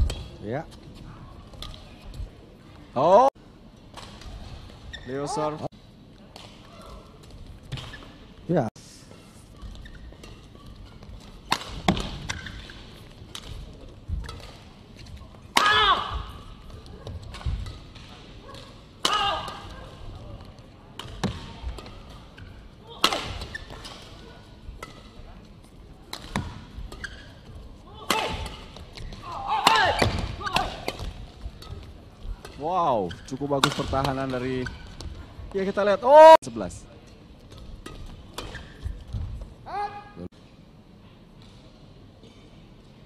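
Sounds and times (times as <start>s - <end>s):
shoe squeaks: 4.8s - 5.4s, 9.5s - 11.2s, 23.4s - 24.0s, 26.9s - 27.5s, 33.0s - 33.5s, 38.4s - 39.1s
rackets hitting shuttlecock: 9.6s - 14.7s, 21.0s - 24.2s, 26.1s - 27.2s, 28.0s - 32.7s, 33.6s - 35.2s.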